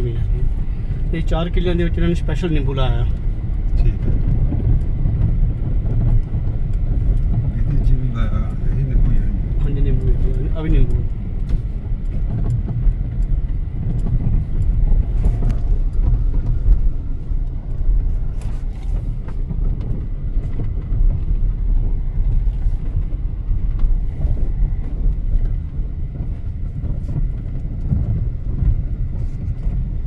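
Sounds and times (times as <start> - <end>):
car engine and tyres rumbling: 0.0 - 30.0.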